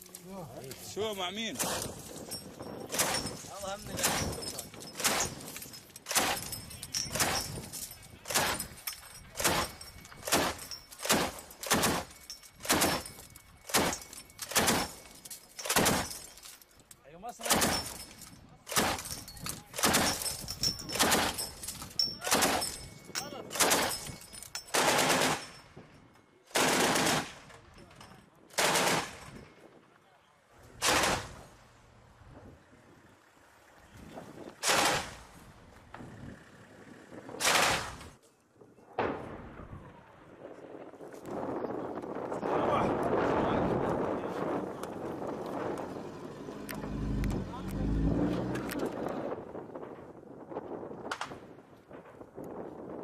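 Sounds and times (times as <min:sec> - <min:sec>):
wind rumbling on microphone: 0:00.6 - 0:15.1, 0:17.6 - 0:26.0, 0:30.6 - 0:53.0
machine gun bursts: 0:02.9 - 0:08.8, 0:09.4 - 0:16.4, 0:17.4 - 0:18.1, 0:18.7 - 0:22.9, 0:23.5 - 0:25.6, 0:26.5 - 0:27.5, 0:28.6 - 0:29.4, 0:30.8 - 0:31.4.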